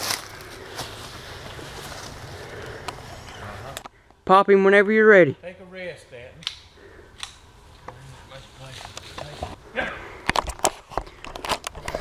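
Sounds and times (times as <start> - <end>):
crackling in dry leaves: 0.0 - 3.9.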